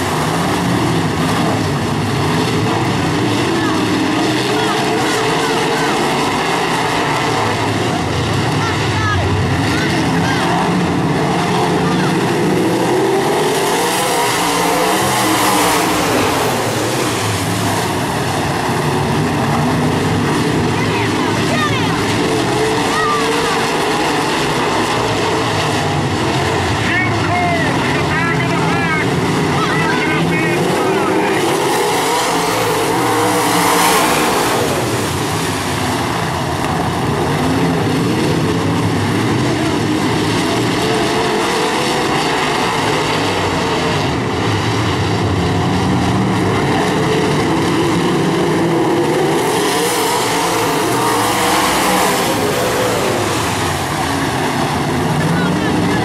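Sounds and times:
race car engines passing: 0.0 - 56.0.

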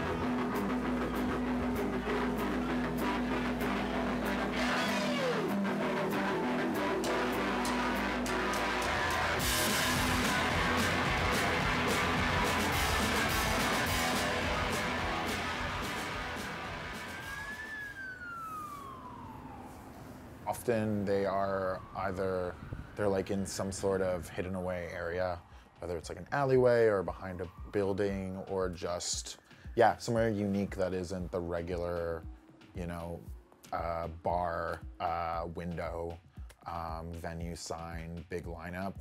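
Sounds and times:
electric guitars sustained chord: 0.0 - 17.8
emergency siren wailing: 0.0 - 32.4.

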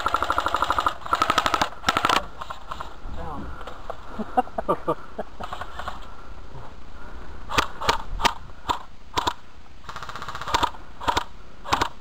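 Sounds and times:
airsoft guns firing: 0.0 - 2.9, 7.5 - 12.0.

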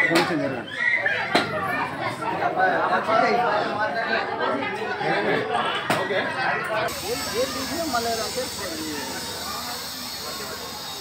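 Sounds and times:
people talking: 0.0 - 11.0
steady hiss: 6.9 - 11.0.

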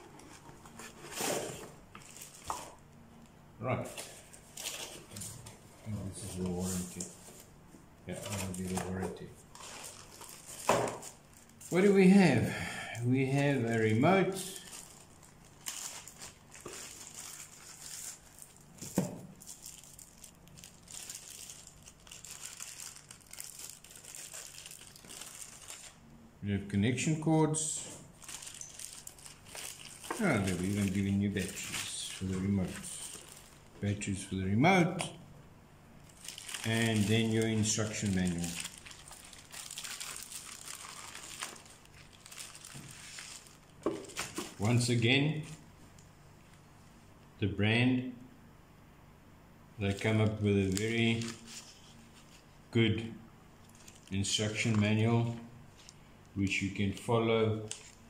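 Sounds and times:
plastic bags crinkling: 0.6 - 2.9, 8.1 - 12.0, 13.4 - 26.0, 27.8 - 33.8, 36.0 - 44.8, 49.9 - 52.5, 53.6 - 56.0, 57.6 - 58.0.

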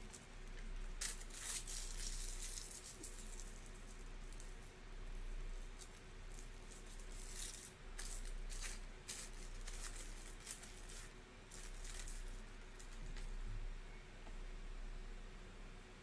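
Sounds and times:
scratchy rustling: 0.0 - 13.4
steady low hum: 0.0 - 16.0.

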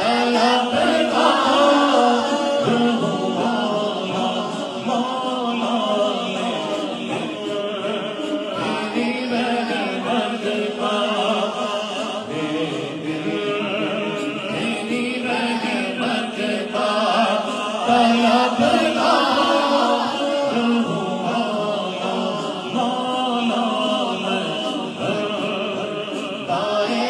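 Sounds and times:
man singing into a microphone: 0.0 - 27.0.

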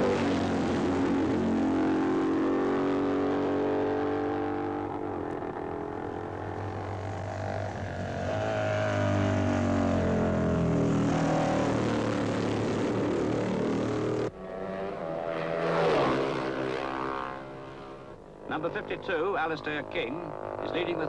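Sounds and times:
racing motorcycle passing at speed: 0.0 - 21.0.

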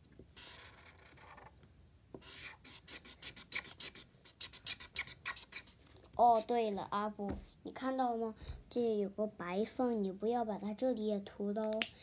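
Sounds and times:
marker scrubbing on paper: 0.4 - 1.5, 2.2 - 6.9.

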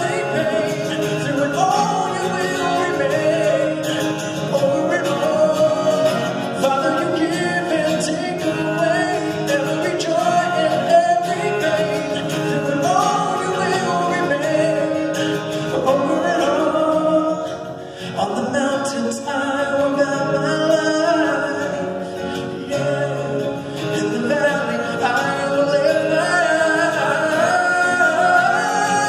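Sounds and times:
man singing wordless melody: 0.0 - 29.0
strummed acoustic guitar: 0.0 - 29.0.

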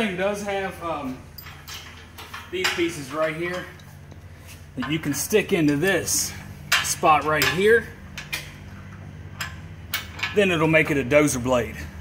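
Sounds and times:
light metal clicks and clinks: 1.3 - 10.5.

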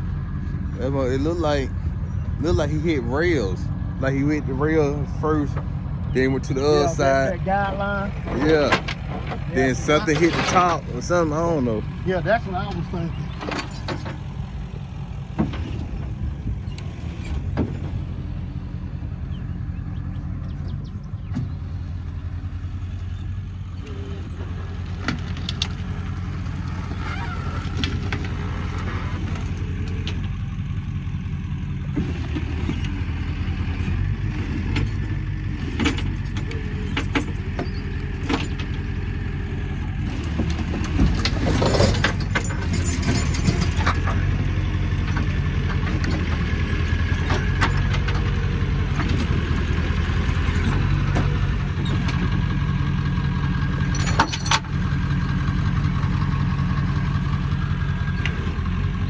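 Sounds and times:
truck engine idling: 0.0 - 59.0
sharp metal knocks and clanks: 40.2 - 44.4, 53.8 - 54.7.

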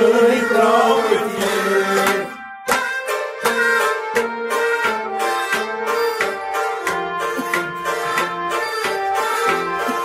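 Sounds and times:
harmonium holding chords: 0.0 - 10.0.

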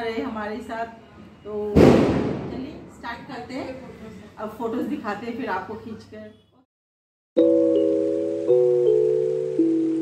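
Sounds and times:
sudden bang: 1.7 - 3.0
woman speaking: 2.4 - 6.4.

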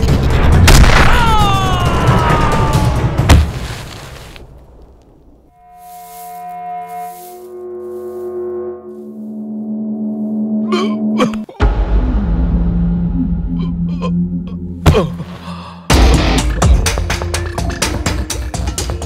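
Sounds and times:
sustained music notes: 5.5 - 14.8
loud dramatic music: 15.9 - 19.0.

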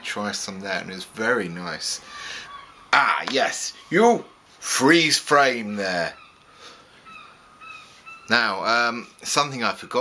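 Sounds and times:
bird calling faintly: 0.8 - 10.0.

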